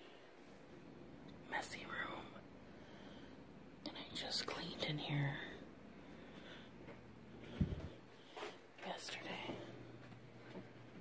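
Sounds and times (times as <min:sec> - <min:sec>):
person whispering: 0:01.4 - 0:02.4, 0:03.8 - 0:05.6, 0:08.8 - 0:09.8.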